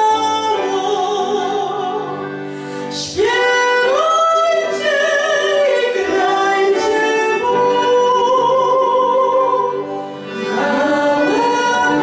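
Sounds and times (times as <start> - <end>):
two women singing a carol: 3.0 - 12.0.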